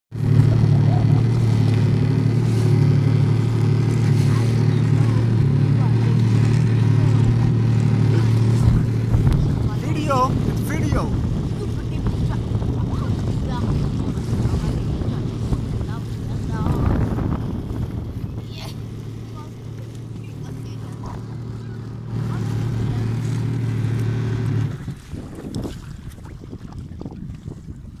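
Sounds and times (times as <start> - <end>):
jet ski engine running: 0.1 - 28.0.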